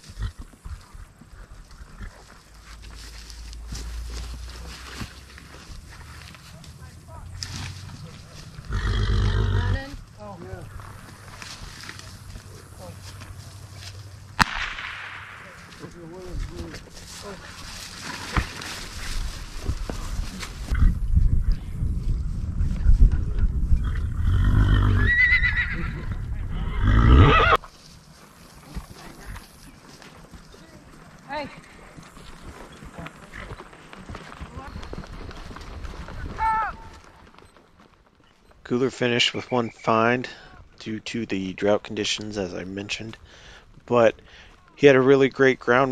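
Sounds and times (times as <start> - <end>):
horses moving: 0.0 - 14.4, 15.4 - 45.9
horse whinnying: 8.6 - 9.9, 23.8 - 27.6
wind on microphone: 19.0 - 25.1, 25.8 - 27.4.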